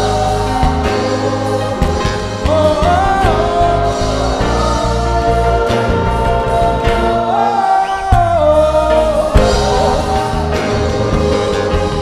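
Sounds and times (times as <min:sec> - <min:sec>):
gospel choir singing in harmony: 0:00.0 - 0:12.0
keyboard: 0:00.0 - 0:12.0.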